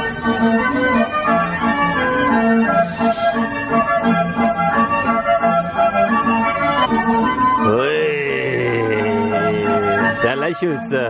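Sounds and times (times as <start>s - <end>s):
organ carousel music: 0.0s - 11.0s.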